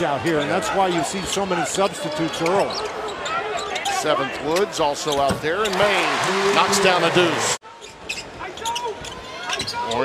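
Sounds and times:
arena crowd noise: 0.0s - 10.0s
sneakers squeaking on floor: 7.8s - 10.0s.

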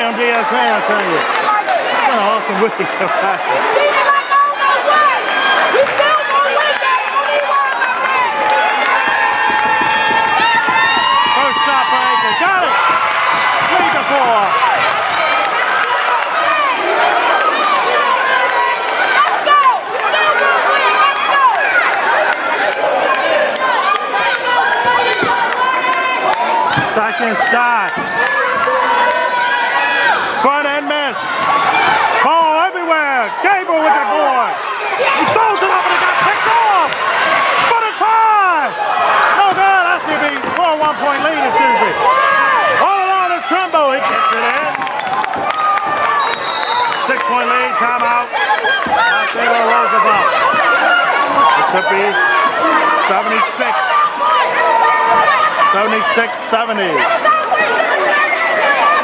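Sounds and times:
voices calling out: 0.0s - 59.0s
basketball bouncing on hardwood: 9.0s - 11.6s.

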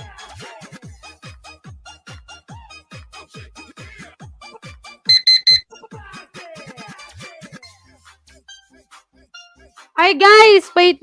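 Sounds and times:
high-pitched timer beeps: 5.1s - 5.6s.

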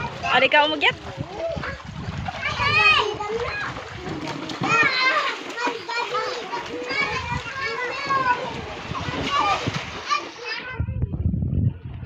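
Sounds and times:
water splashing: 0.0s - 10.9s
children calling and chattering: 0.0s - 12.0s.

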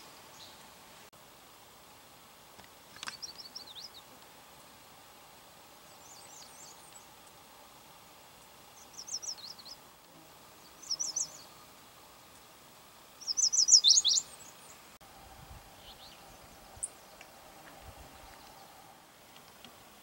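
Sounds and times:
bird singing rapid high notes: 13.2s - 14.3s.

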